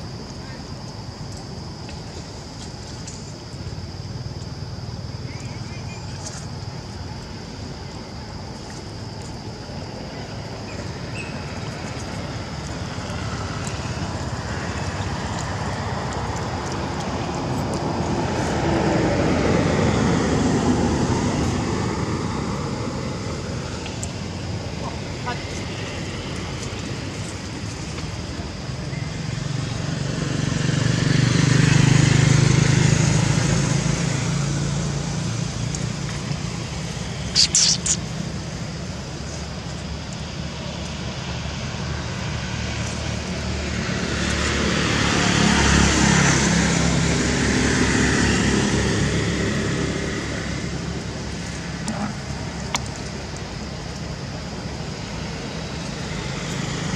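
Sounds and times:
steady background hum: 0.0s - 56.9s
motor vehicles passing by: 2.0s - 56.9s
high-pitched chirping: 37.3s - 38.1s.

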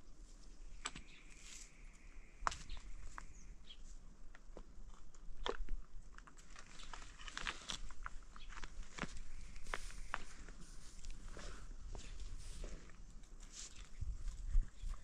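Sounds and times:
light clicks and crunches: 4.2s - 15.0s.

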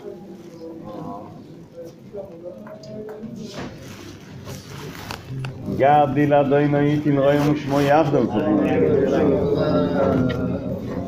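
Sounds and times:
men chanting prayers: 5.6s - 11.0s.

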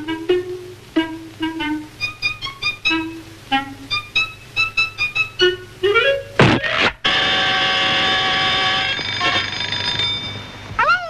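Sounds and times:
loud ringing tone: 7.0s - 10.7s.

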